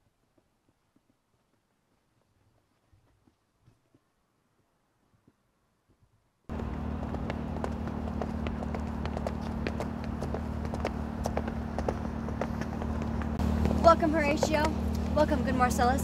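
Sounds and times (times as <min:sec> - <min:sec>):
footsteps on concrete: 0:06.5 - 0:15.2
steady low hum: 0:06.5 - 0:16.0.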